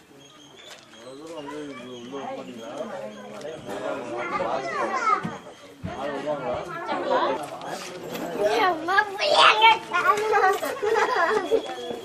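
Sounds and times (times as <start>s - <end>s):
group of people talking: 0.0s - 12.0s.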